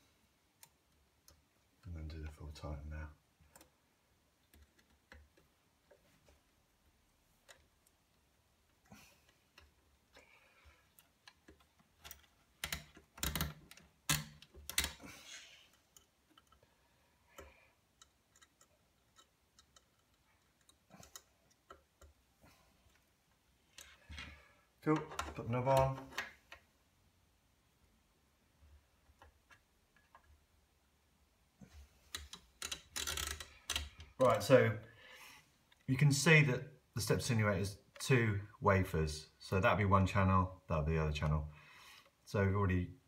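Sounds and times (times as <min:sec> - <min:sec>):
small metallic clicks and taps: 0:04.4 - 0:06.0, 0:10.9 - 0:15.0, 0:15.7 - 0:16.7, 0:17.3 - 0:22.2, 0:32.1 - 0:34.1.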